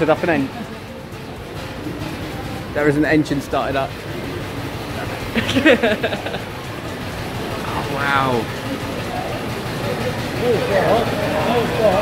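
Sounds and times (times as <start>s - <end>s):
old car engine running: 0.0s - 12.0s
voice or laughter: 5.3s - 6.5s.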